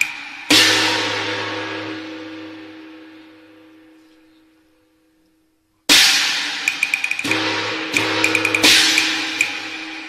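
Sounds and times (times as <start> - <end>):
gong and cymbal crash: 0.0 - 3.9, 7.2 - 10.0
quick sharp clicking strokes: 6.7 - 7.3
sustained instrumental tone: 6.7 - 10.0.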